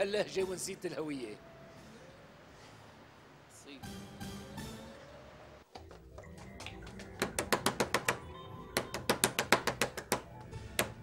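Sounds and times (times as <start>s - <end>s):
hands banging on wooden door: 7.0s - 8.2s, 8.8s - 11.0s.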